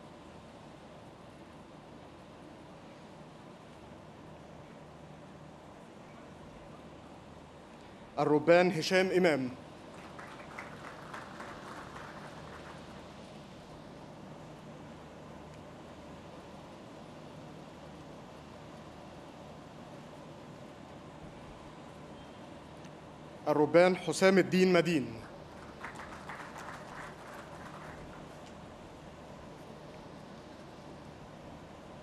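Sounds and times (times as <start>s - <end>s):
background hum: 0.0s - 32.0s
light applause: 9.4s - 13.5s, 24.9s - 29.0s.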